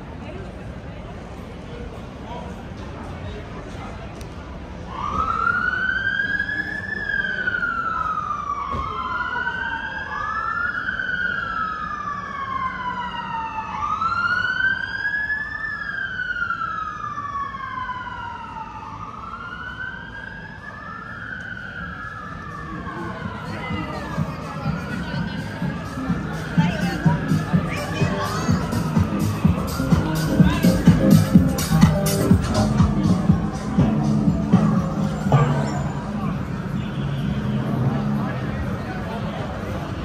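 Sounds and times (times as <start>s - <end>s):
emergency vehicle sirens wailing: 4.4s - 40.0s.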